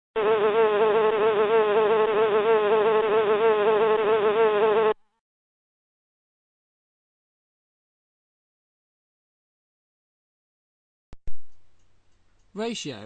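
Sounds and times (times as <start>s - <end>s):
bee buzzing: 0.2s - 5.0s.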